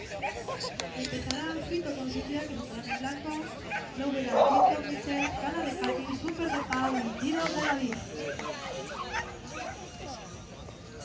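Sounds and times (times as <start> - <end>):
background chatter of people: 0.0 - 11.0.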